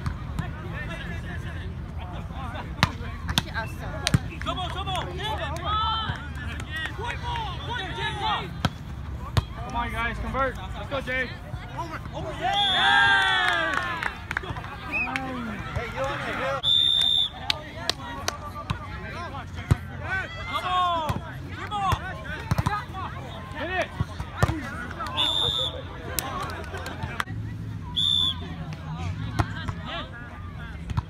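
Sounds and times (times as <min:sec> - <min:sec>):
players calling and chattering: 0:00.0 - 0:31.0.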